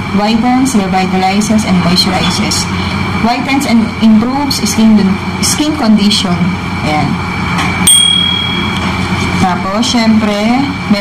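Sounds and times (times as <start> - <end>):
steady background hum: 0.0 - 11.0
high bell-like ding: 7.8 - 9.0.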